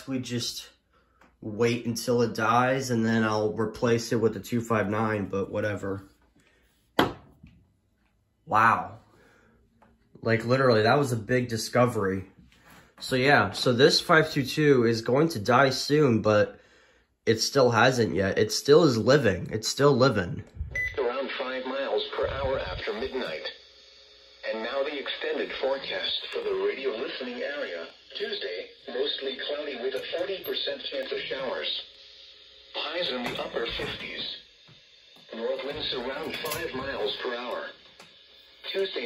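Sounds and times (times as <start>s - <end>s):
forecast voice from small speaker: 21.0s - 23.4s.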